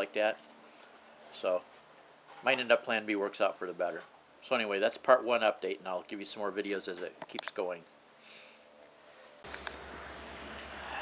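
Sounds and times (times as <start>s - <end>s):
low outdoor rumble: 9.5s - 11.0s.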